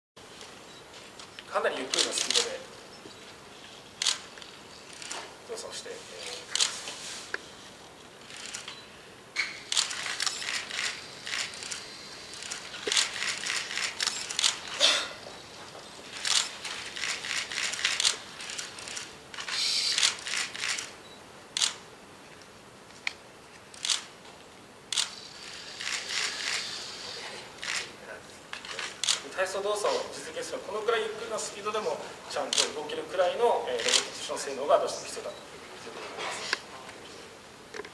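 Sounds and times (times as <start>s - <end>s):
sharp clicks: 4.0s - 5.2s, 21.6s - 21.8s, 24.9s - 25.2s.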